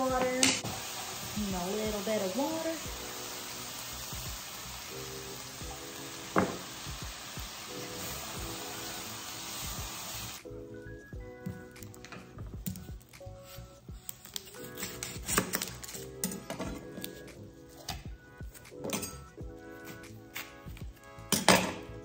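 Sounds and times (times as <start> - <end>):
water sizzling in hot skillet: 0.0 - 10.5
background music: 0.0 - 22.0.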